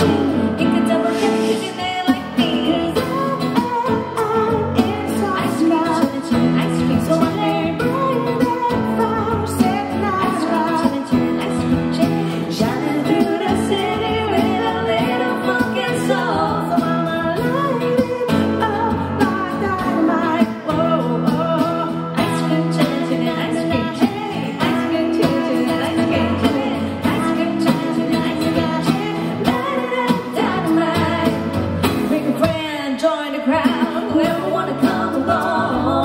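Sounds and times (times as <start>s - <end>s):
keyboard: 0.0s - 32.8s
acoustic guitar: 0.0s - 36.0s
woman singing into microphone: 0.0s - 36.0s.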